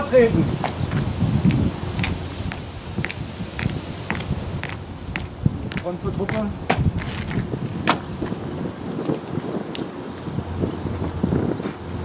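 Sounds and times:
low outdoor rumble: 0.0 - 9.0
boot footsteps on paving: 0.6 - 8.4.

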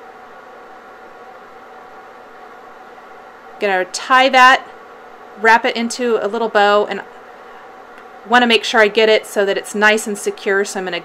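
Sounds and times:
light constant hum: 0.0 - 11.0
room tone hiss: 0.0 - 11.0.

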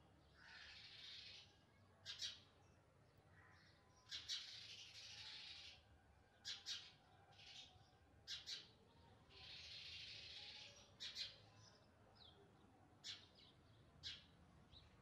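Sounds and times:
sparrow chick chirping: 2.0 - 2.4, 4.1 - 5.8, 6.4 - 8.7, 9.3 - 11.8, 13.0 - 14.9.

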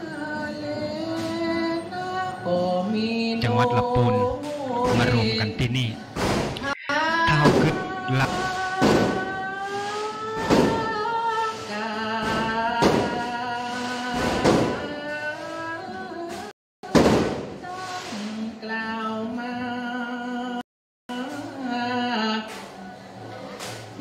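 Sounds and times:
person chanting a sermon: 3.2 - 6.0, 6.6 - 10.8.

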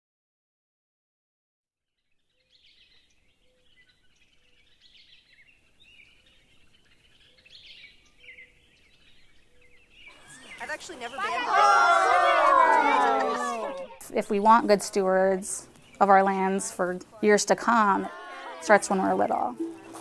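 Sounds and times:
small birds chirping: 2.1 - 13.0, 13.7 - 20.0
voices: 10.1 - 20.0.

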